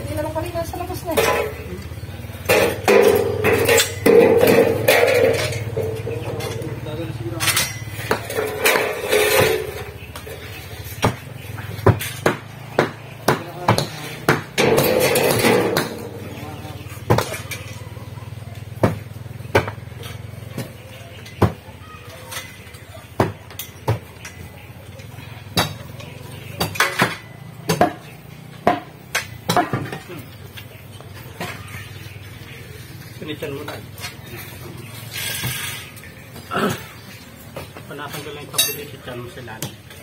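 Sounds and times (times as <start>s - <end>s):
voices in background: 0.0s - 40.0s
hand tools knocking on concrete blocks: 0.9s - 17.8s, 18.5s - 31.9s.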